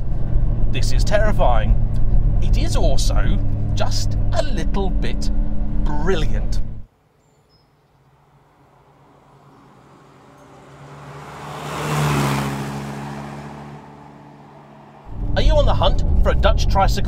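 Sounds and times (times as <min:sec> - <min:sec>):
vehicle engine passing by: 0:09.0 - 0:17.0.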